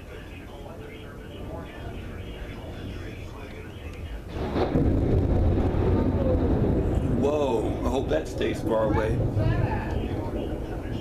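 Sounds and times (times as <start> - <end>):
thunder crack and rumble: 1.1 - 11.0.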